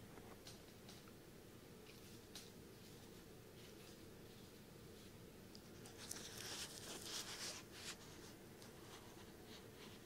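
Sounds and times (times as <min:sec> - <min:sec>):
scratchy rubbing against microphone: 0:05.7 - 0:10.0.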